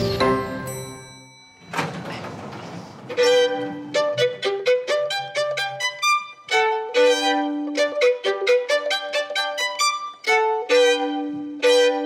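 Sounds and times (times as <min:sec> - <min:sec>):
solo violin: 0:03.0 - 0:12.0.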